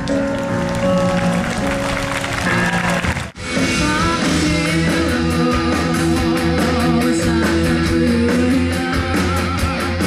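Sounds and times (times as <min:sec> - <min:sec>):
keyboard chords: 0:00.0 - 0:09.2
guitar: 0:00.0 - 0:10.0.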